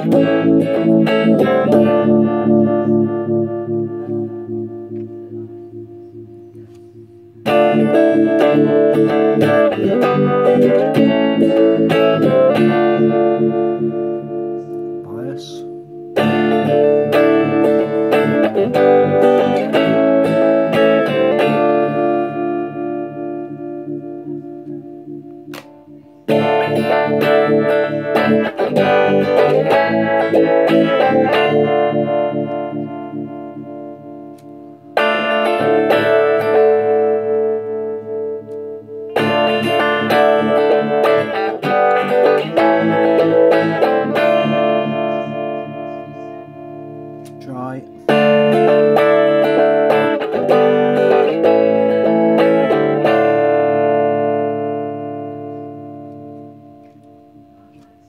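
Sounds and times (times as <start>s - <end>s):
electric guitar chords with phaser: 0.0s - 58.0s.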